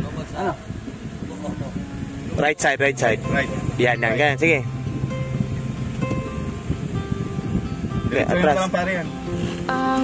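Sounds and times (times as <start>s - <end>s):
acoustic guitar pop song: 1.1s - 10.0s
person singing: 9.7s - 10.0s.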